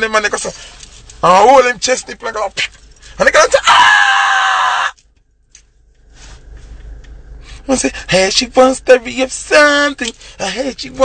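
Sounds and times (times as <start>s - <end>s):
man shouting high-pitched: 3.2s - 4.9s.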